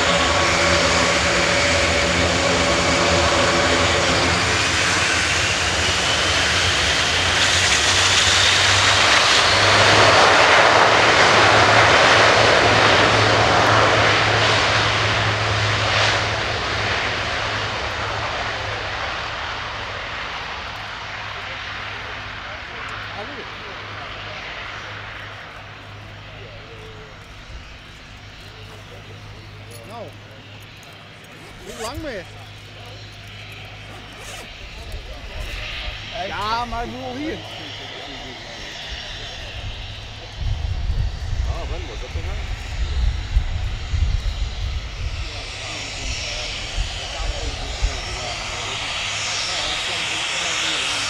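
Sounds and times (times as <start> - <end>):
propeller drone: 0.0 - 51.0
turboprop aircraft engines running: 0.0 - 51.0.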